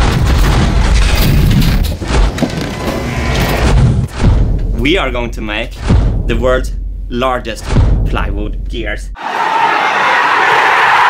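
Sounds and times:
deep rumble with heavy thuds: 0.0s - 9.0s.

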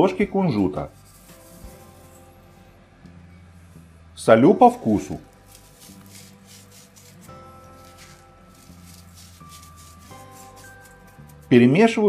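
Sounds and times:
sustained background music: 0.0s - 12.0s.

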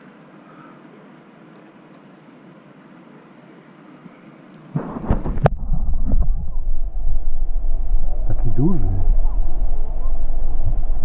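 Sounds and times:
loud low rumble: 4.8s - 11.0s.

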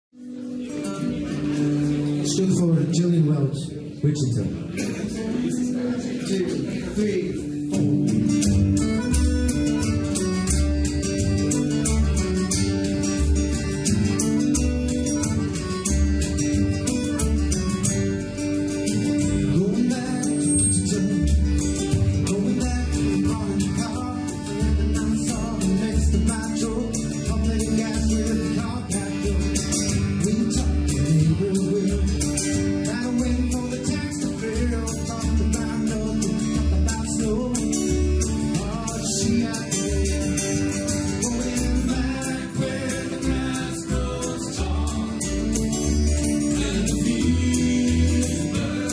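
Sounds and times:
acoustic guitar strumming: 0.2s - 48.9s
upright bass: 0.2s - 48.9s
button accordion: 4.8s - 48.9s
frame drum beat: 21.1s - 48.9s.

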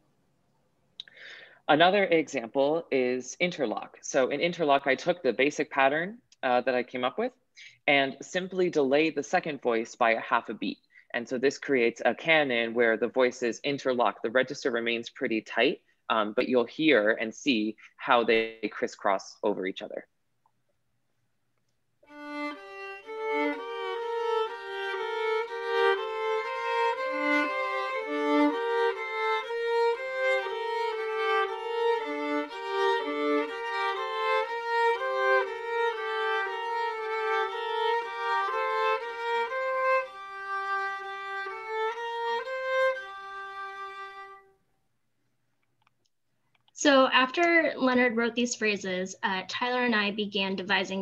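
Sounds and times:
two-voice musical canon: 1.0s - 20.1s, 22.1s - 44.4s.

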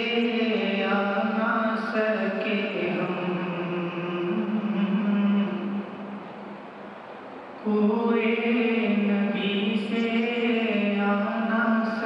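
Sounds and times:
man chanting unaccompanied: 0.0s - 6.2s, 7.6s - 12.0s.

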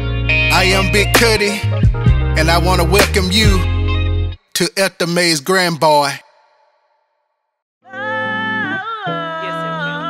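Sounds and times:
man speaking: 0.5s - 1.6s, 2.4s - 3.6s, 4.6s - 6.4s.

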